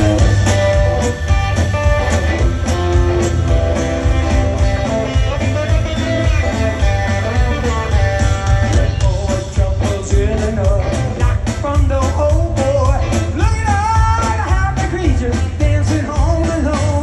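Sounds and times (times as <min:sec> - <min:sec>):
accordion: 0:00.0 - 0:13.4
loud live rock band: 0:00.0 - 0:17.0.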